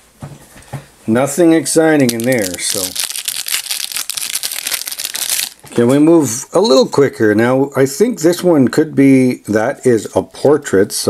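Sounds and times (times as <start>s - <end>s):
plastic wrapper crinkling: 2.0s - 5.8s.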